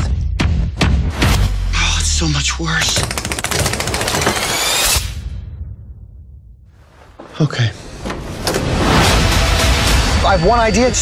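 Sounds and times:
rapid rattling clicks: 2.9 - 4.6.

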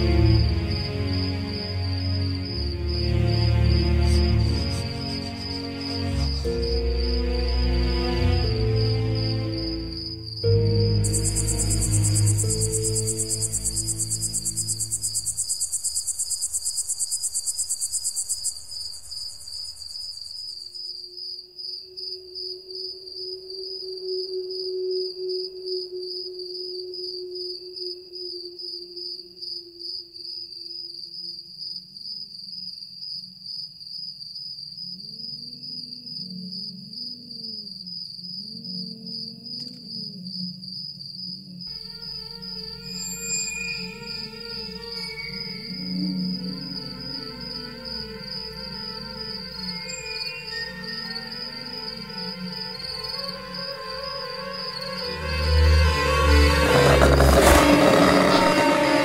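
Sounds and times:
fast high cricket trill: 0.0 - 21.1, 41.7 - 59.0
dark ambient film score: 0.0 - 33.6, 34.6 - 59.0
slow steady cricket chirping: 0.0 - 59.0
low rumble: 55.2 - 59.0.

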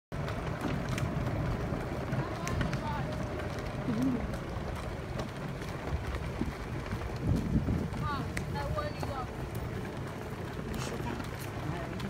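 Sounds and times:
tyres crunching gravel: 0.1 - 12.0
vehicle rumbling on gravel: 0.1 - 12.0
wind on microphone: 5.8 - 9.3.

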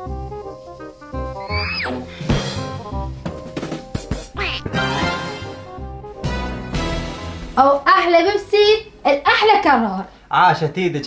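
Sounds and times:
playful background music: 0.1 - 8.4
swooping comic sound effect: 4.4 - 6.0.

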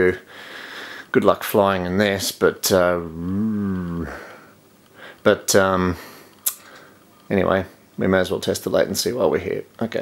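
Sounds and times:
man's drawn-out hesitation sound: 1.1 - 4.4.

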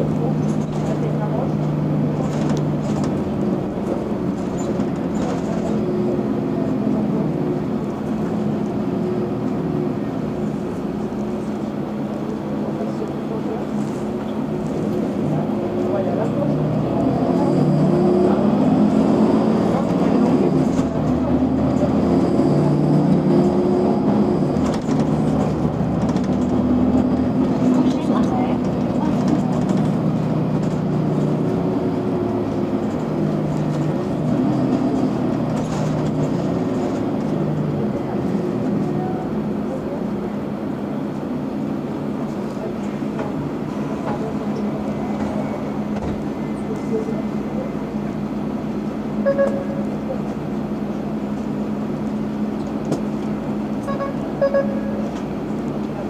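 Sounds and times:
bus engine droning: 0.0 - 56.0.

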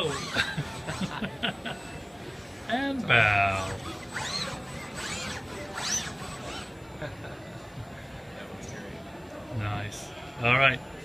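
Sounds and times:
robot arm servo whine: 0.0 - 2.7, 3.4 - 6.8.

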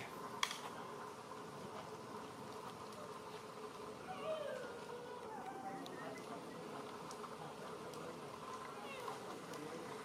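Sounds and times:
low outdoor drone: 0.0 - 10.0.

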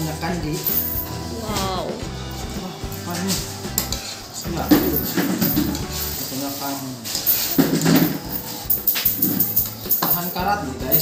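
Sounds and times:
metal net weights clinking in plastic bag: 4.6 - 11.0.

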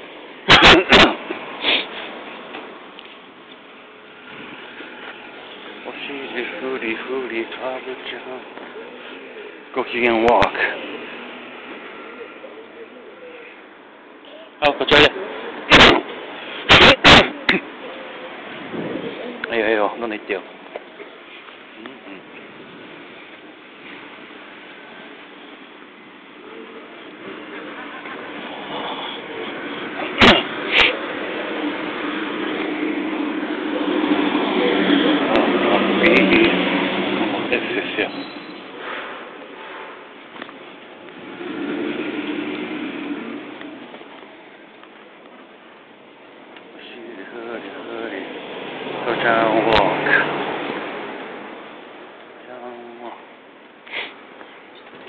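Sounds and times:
street traffic noise: 0.0 - 55.0
person sniffing: 1.5 - 2.2, 30.5 - 31.1, 53.8 - 54.2
car engine hum: 21.8 - 52.4.

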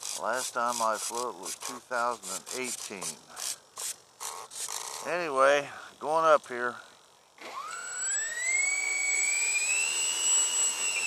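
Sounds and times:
electric motor whine: 0.0 - 11.0.

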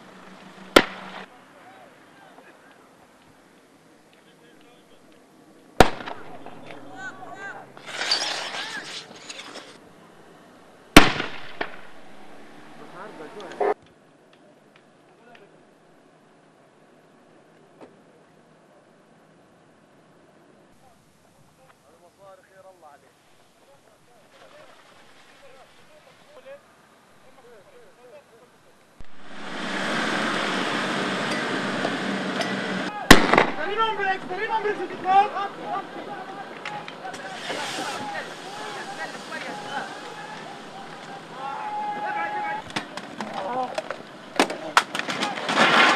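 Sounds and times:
tyres hissing on dirt road: 0.0 - 13.8, 20.7 - 45.9
loud sharp bang with echo: 5.8 - 7.0, 11.0 - 12.2, 33.1 - 34.0.

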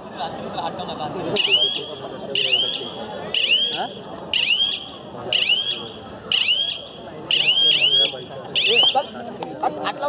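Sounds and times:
murmur of crowd voices: 0.0 - 10.0.

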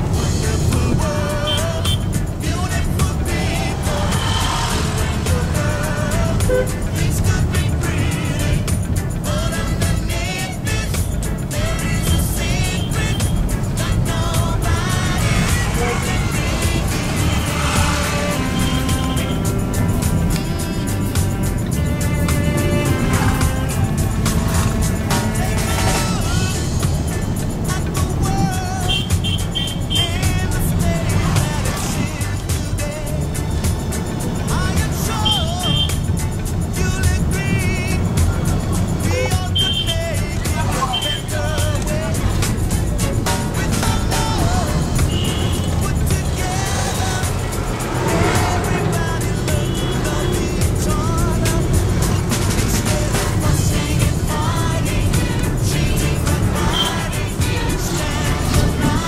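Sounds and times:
car engine rumble: 0.0 - 59.0
music playing: 0.0 - 59.0
road noise: 0.0 - 59.0.

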